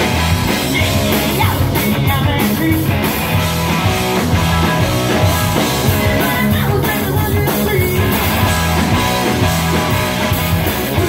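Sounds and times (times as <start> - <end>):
drum kit: 0.0 - 11.0
electric bass: 0.0 - 11.0
electric guitar: 0.0 - 11.0.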